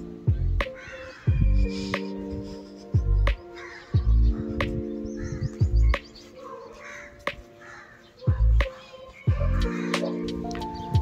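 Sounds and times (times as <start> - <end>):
background music: 0.0 - 11.0
crow cawing: 0.6 - 10.4
deep bass hit: 4.0 - 4.4, 5.5 - 6.0.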